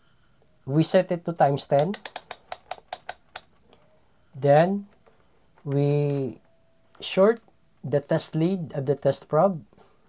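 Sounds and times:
rotary switch clicking: 1.7s - 3.5s.

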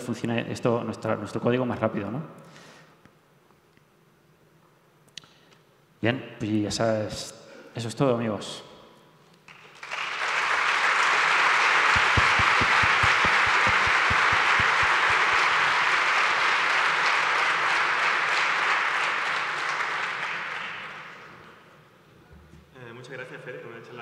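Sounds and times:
audience applauding: 9.5s - 21.3s.

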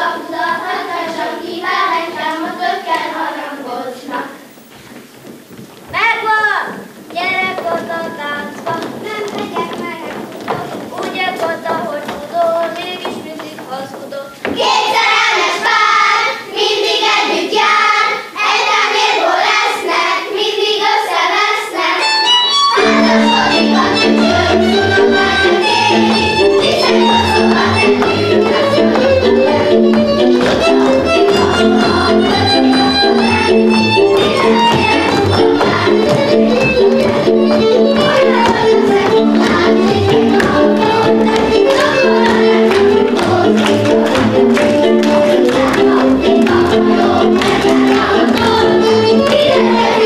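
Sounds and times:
children singing folk song: 0.0s - 4.9s, 6.2s - 50.0s.

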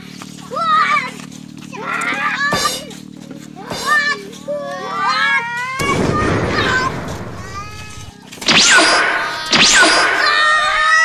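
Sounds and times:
children shouting while playing: 0.4s - 8.2s, 9.1s - 11.0s.

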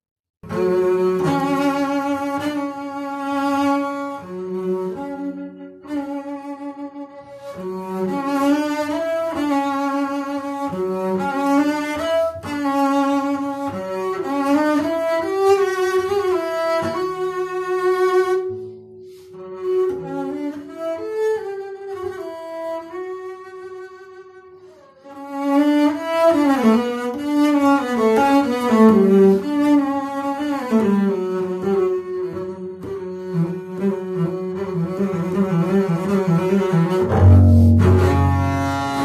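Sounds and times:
bowed double bass: 0.4s - 39.0s.

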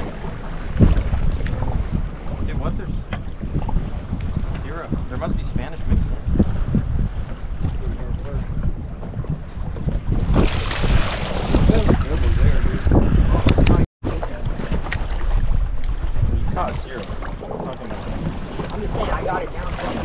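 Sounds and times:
water splashing against hull: 0.0s - 20.0s
wind buffeting microphone: 0.0s - 20.0s.

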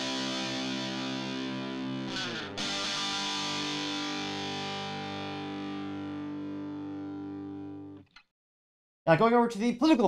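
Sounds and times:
distorted electric guitar chord: 0.0s - 8.0s.

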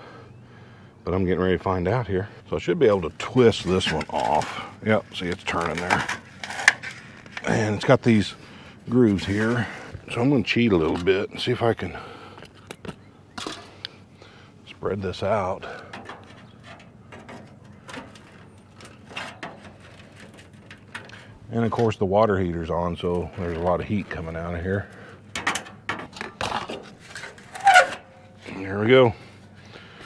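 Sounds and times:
metal vent cap scraping and clicking: 3.0s - 8.0s, 15.1s - 22.0s, 23.1s - 28.5s.

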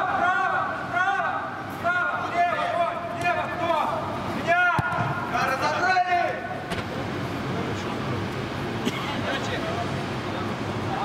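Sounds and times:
footballer shouting: 0.0s - 6.6s
low noise of play: 0.0s - 11.0s.

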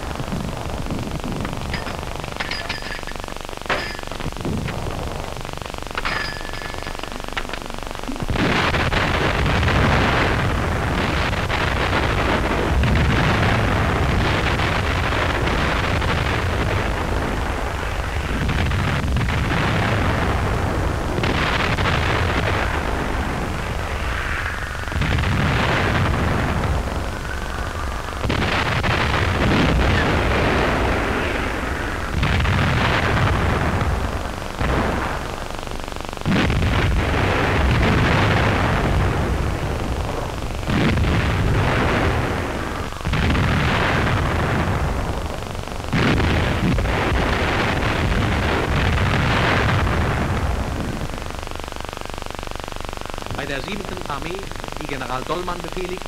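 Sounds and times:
artillery blasts rumbling: 3.8s - 35.5s, 36.2s - 51.2s.

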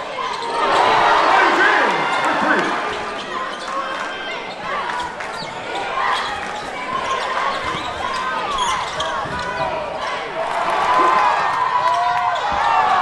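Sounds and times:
sneakers squeaking: 0.0s - 10.6s
crowd of voices chattering: 0.0s - 13.0s.

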